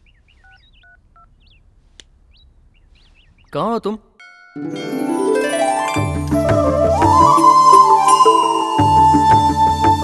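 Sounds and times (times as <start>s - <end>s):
faint bird chirps: 0.0s - 3.6s.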